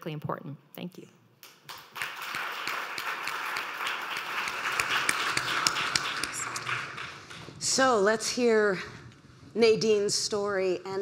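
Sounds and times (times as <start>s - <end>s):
audience applauding: 1.5s - 7.6s.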